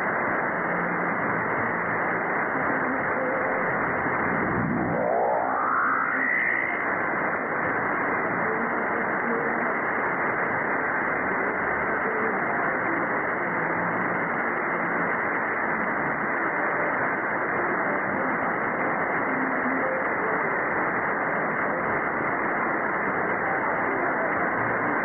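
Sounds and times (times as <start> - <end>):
faint radio station: 0.0 - 25.0
radio static hiss: 0.0 - 25.0
rising whistle: 4.2 - 6.9.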